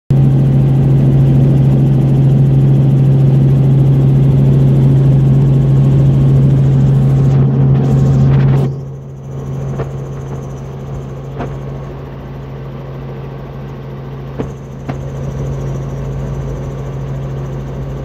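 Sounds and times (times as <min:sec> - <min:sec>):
helicopter drone: 0:00.1 - 0:18.0.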